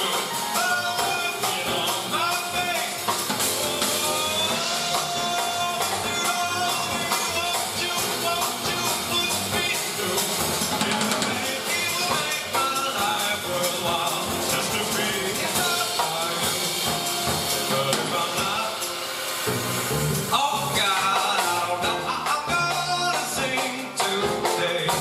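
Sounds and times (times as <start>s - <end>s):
drum kit: 0.0s - 25.0s
grand piano: 0.0s - 25.0s
upright double bass: 0.0s - 25.0s.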